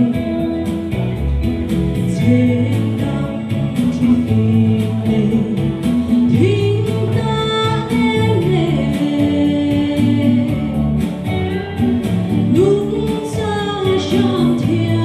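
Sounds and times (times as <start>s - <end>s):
backing music with steady beat: 0.0s - 15.0s
woman singing into microphone: 0.0s - 15.0s.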